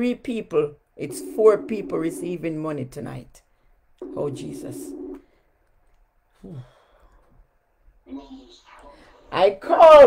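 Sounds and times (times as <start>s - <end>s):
sigh: 6.4s - 7.2s.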